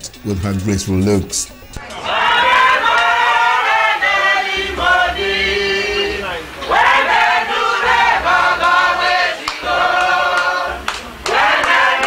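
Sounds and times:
group singing: 0:01.8 - 0:12.0.

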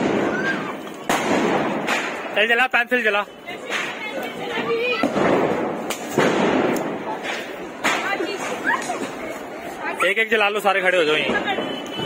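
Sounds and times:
firecrackers banging: 0:00.0 - 0:12.0.

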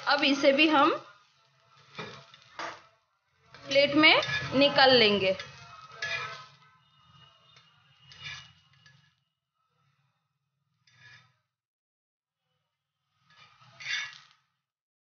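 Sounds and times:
spatula scraping a griddle: 0:00.6 - 0:11.6, 0:12.5 - 0:14.7.

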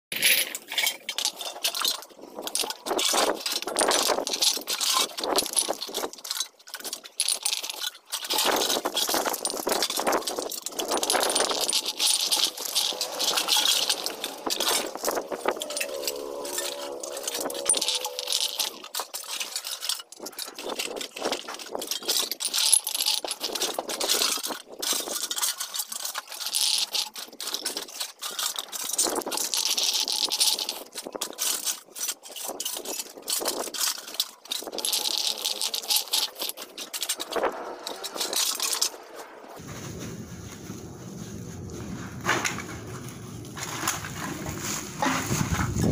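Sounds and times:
cans and plastic bottles clattering: 0:00.1 - 0:39.6, 0:42.2 - 0:45.9.

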